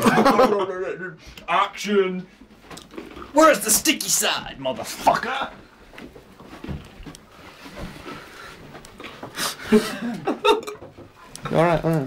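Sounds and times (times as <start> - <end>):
faint handling rustles: 4.7 - 9.6.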